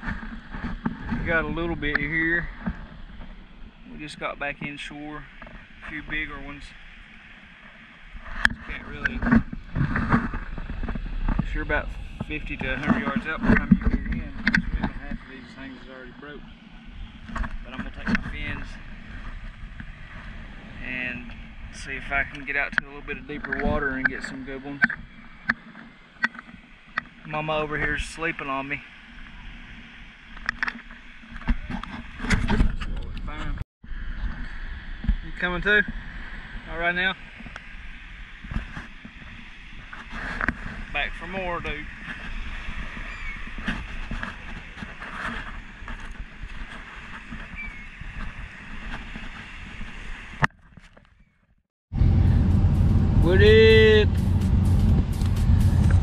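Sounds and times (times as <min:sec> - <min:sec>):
wind buffeting microphone: 0:00.0 - 0:50.5, 0:51.2 - 0:56.0.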